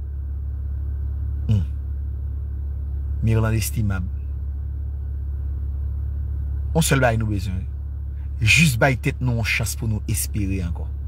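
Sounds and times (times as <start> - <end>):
steady low rumble: 0.0 - 11.0
short vocal sound: 1.4 - 1.8.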